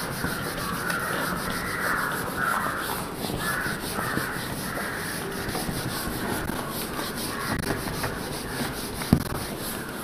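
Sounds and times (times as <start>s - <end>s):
eraser rubbing on whiteboard: 0.0s - 10.0s.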